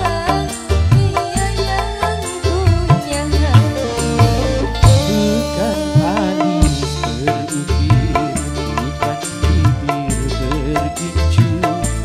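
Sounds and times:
bass line: 0.0s - 12.0s
hand drums beating: 0.0s - 12.0s
wavering melody: 3.1s - 9.6s.

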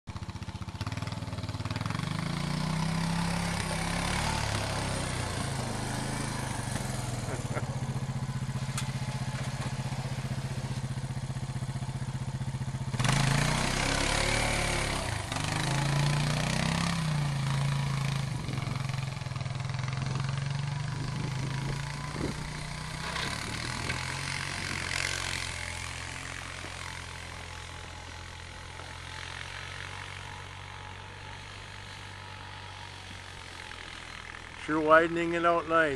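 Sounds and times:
atv engine running: 0.1s - 35.9s.

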